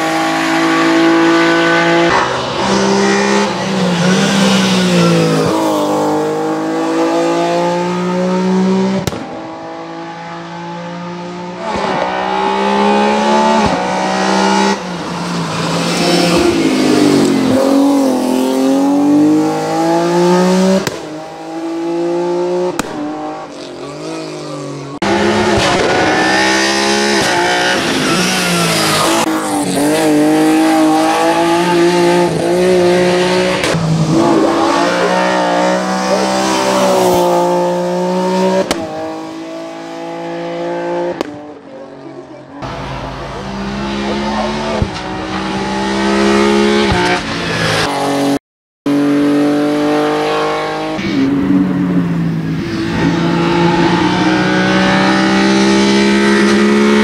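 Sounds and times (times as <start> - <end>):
race car engine revving: 0.0 - 41.7, 42.6 - 57.0.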